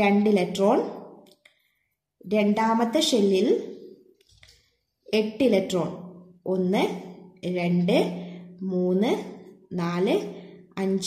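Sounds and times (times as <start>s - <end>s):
person speaking: 5.2s - 11.0s.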